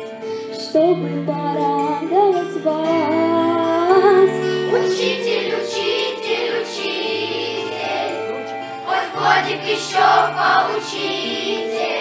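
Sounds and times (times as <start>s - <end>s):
musical backing track: 0.0s - 12.0s
children's choir singing: 4.7s - 12.0s.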